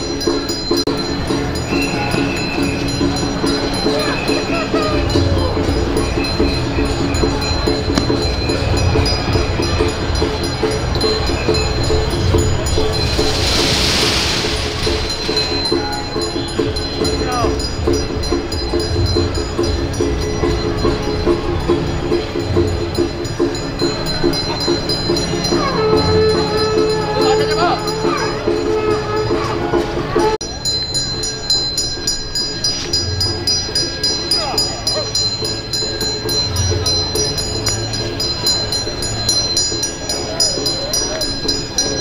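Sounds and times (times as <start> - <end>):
low drum beats: 0.0 - 42.0
hissing burst: 13.0 - 15.5
steady horn-like tones: 24.6 - 30.4.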